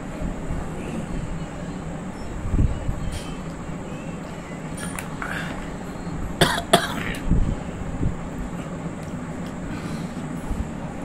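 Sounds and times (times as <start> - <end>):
man coughing: 6.4 - 7.2.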